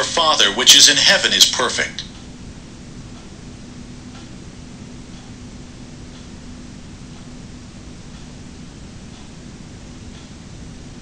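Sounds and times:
faint hum: 0.0 - 11.0
steady hiss: 0.0 - 11.0.

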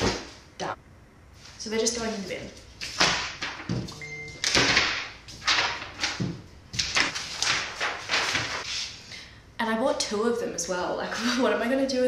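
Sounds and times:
brief steady tone: 3.9 - 4.4
paper rustling and crumpling: 4.4 - 9.0.

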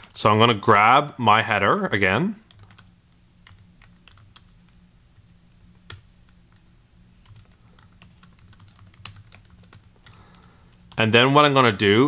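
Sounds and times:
computer keyboard typing: 1.8 - 4.8, 5.8 - 11.0.

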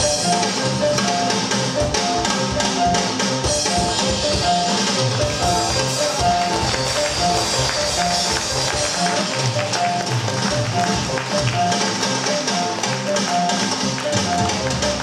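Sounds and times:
drum kit beat: 0.0 - 15.0
ocarina melody: 0.0 - 15.0
piano: 0.0 - 15.0.

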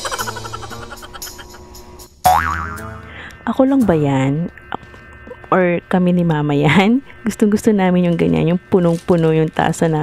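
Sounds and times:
music with drum beat: 0.0 - 1.8
cartoon boing: 2.3 - 3.0.

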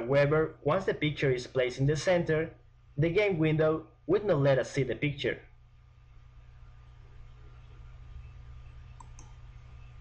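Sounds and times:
steady low hum: 0.0 - 10.0
computer mouse clicks: 7.3 - 10.0.

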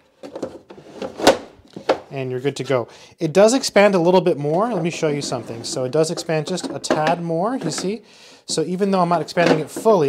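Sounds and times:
wood sliding and knocking: 4.4 - 8.0, 9.0 - 10.0.

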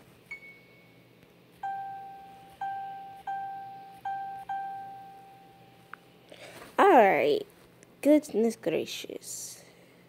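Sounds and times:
phone keyboard beeps: 1.6 - 5.6.

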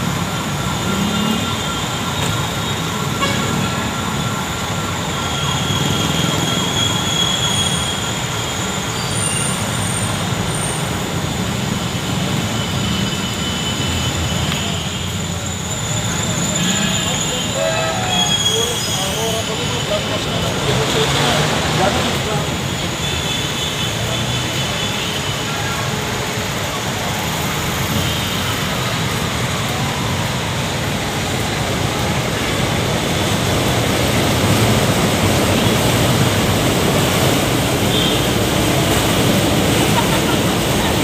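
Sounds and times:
city traffic din: 0.0 - 41.0
elevated train running: 0.0 - 41.0
people talking: 15.8 - 23.2, 39.0 - 41.0.

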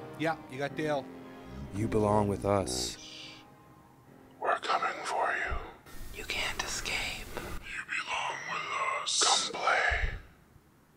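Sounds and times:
person whispering: 4.4 - 10.3.

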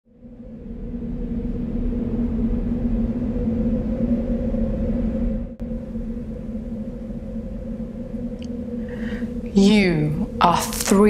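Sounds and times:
ambient drone with deep rumble: 0.0 - 11.0.

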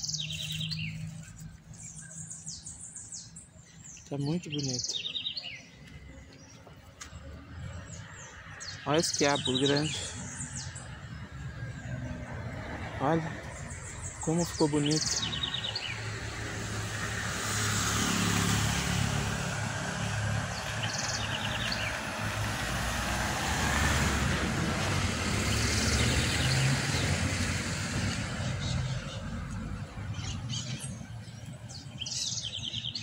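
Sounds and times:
bird chirps: 0.0 - 6.7, 13.4 - 16.1, 30.1 - 33.0
vehicle engine and road noise: 0.0 - 33.0.

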